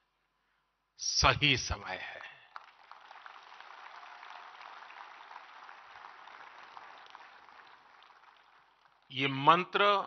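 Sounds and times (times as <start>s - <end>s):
audience clapping: 2.2s - 9.6s.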